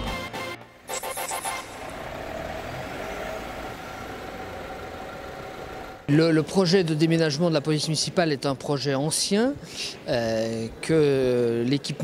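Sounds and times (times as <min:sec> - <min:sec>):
city street traffic noise: 0:00.1 - 0:12.0.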